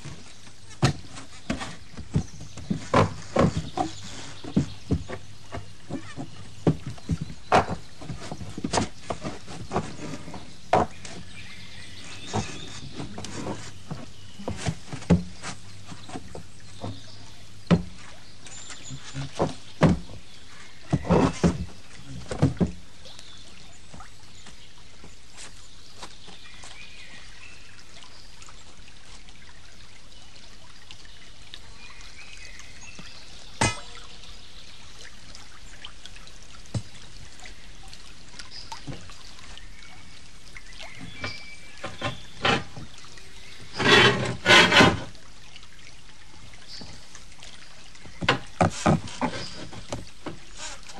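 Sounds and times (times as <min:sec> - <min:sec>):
water pouring over waterwheel: 0:00.0 - 0:50.9
sharp wooden knocks: 0:19.2 - 0:20.2, 0:33.6 - 0:34.0, 0:43.8 - 0:45.1.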